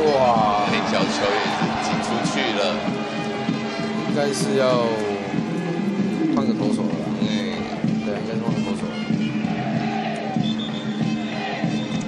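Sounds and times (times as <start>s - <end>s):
stadium cheering music: 0.0s - 12.0s
stadium crowd singing and chanting: 8.9s - 12.0s.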